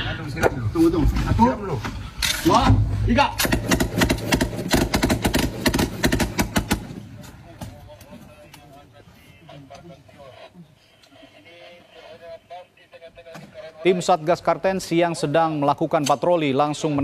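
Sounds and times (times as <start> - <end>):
automatic gunfire: 3.4 - 7.0
faint distant voices: 6.6 - 14.2.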